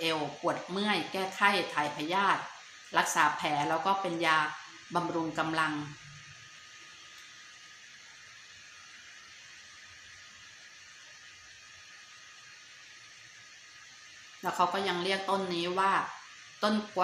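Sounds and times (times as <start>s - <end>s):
room tone hiss: 0.0s - 17.0s.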